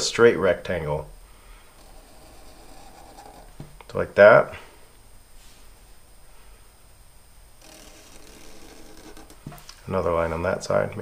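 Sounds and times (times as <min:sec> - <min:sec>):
marker squeaking on paper: 0:01.8 - 0:03.6, 0:07.6 - 0:09.7.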